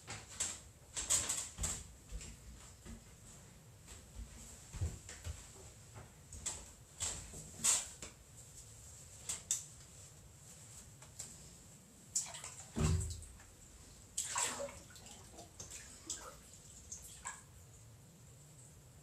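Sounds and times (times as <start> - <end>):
water splashing and sloshing: 12.1 - 17.8.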